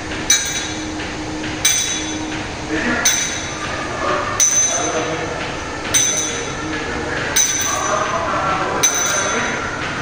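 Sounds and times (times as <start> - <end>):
metal weights clanking: 0.2 - 3.8, 4.4 - 5.2, 5.8 - 8.2, 8.8 - 9.7.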